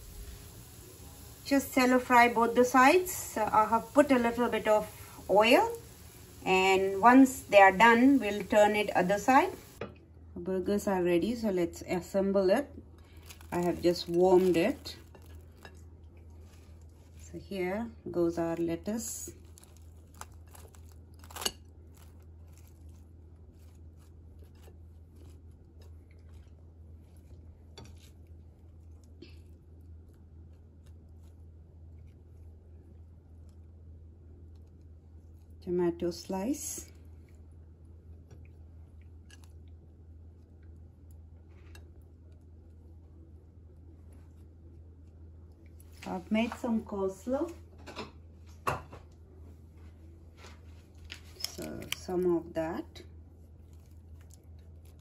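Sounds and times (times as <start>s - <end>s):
steady low hum: 0.0s - 55.0s
lettuce leaves crinkling: 13.0s - 31.4s, 50.4s - 52.3s.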